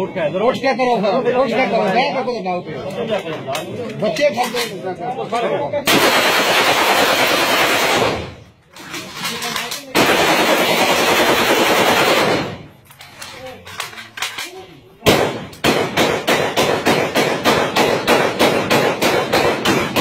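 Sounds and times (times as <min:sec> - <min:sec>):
rifle shots: 0:05.9 - 0:08.5, 0:09.9 - 0:12.7, 0:15.0 - 0:20.0.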